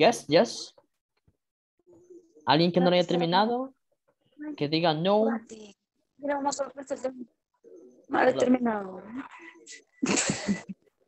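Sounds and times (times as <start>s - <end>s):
person speaking: 6.3s - 9.7s.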